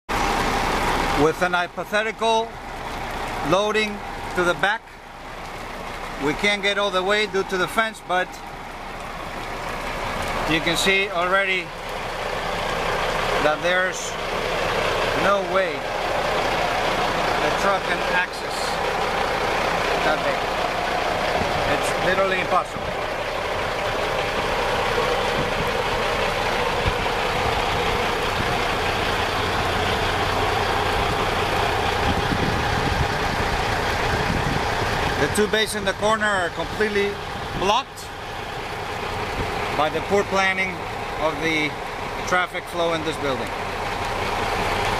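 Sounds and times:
truck engine idling: 0.1 - 44.9.

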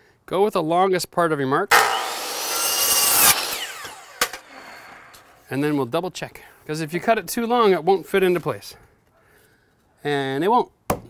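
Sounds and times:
miter saw cutting board: 1.7 - 5.5
saw blade winding down whine: 1.7 - 5.5.

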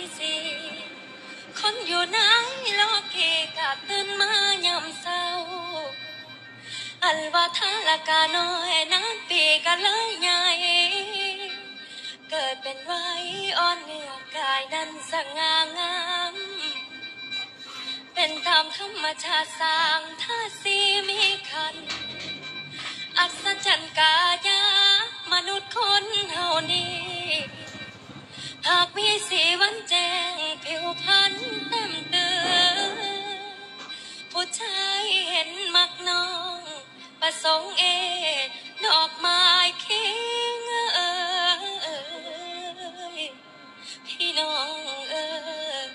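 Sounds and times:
woman singing into microphone: 0.0 - 0.9, 1.5 - 6.0, 6.8 - 16.8, 18.1 - 22.2, 22.9 - 27.7, 28.4 - 45.9
faint backing music: 0.0 - 45.9
woman singing high note: 28.6 - 33.7.

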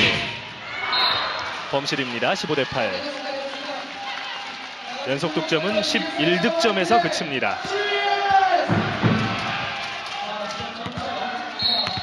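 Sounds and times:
crowd noise echoing in hall: 0.0 - 12.0.

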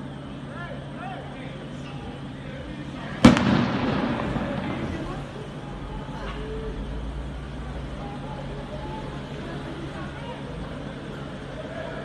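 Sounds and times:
firecracker bang echoing: 3.2 - 6.2.

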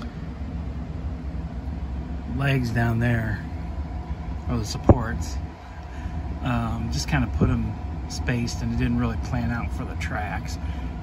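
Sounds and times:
low indoor rumble: 0.0 - 11.0.

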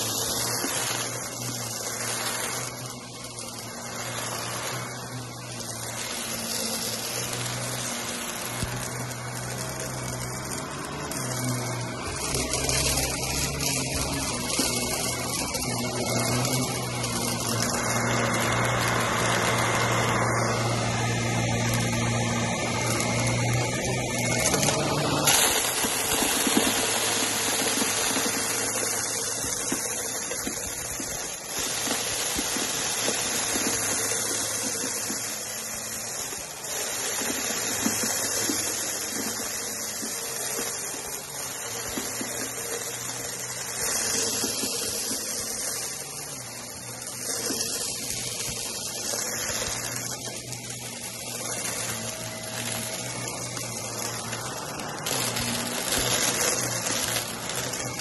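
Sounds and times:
granules crackling and rattling: 0.0 - 58.0
upright vacuum cleaner running: 0.0 - 58.0.

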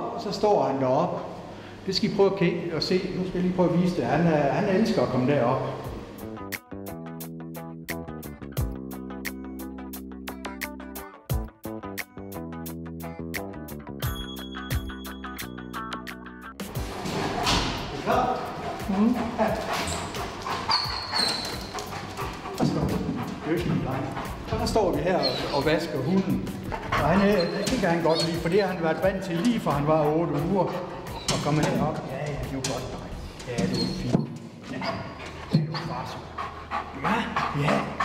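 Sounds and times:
dog whining: 18.4 - 23.4, 25.1 - 26.0, 26.6 - 28.8, 30.7 - 31.5, 33.2 - 38.0.

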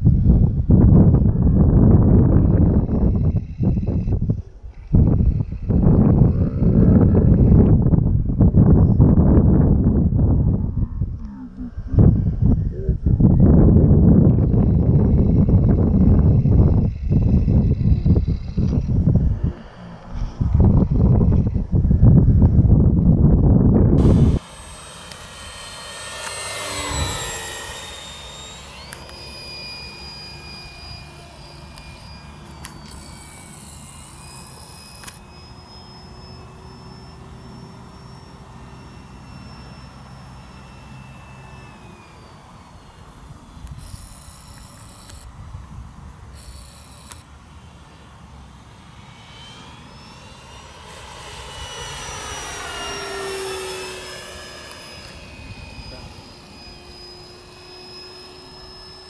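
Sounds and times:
model aircraft motor whine: 0.0 - 59.0.

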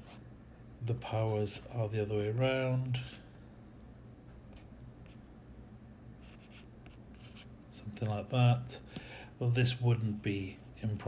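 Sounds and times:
stylus scratching on tablet: 6.2 - 7.5.

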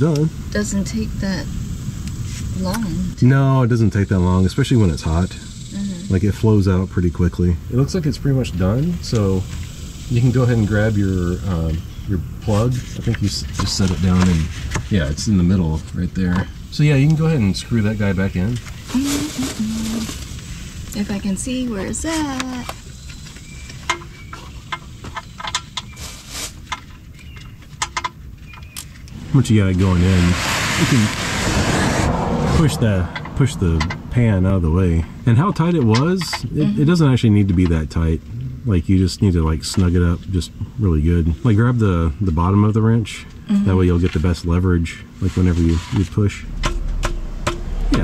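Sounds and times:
low outdoor background: 0.0 - 48.0.

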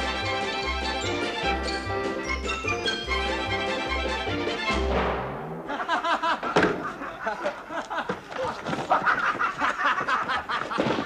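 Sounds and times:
sharp knock: 4.9 - 5.6
people laughing: 5.6 - 11.0.

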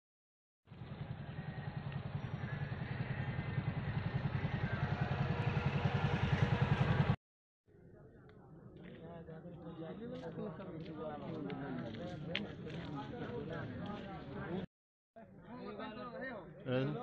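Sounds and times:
engine running: 0.7 - 7.2.

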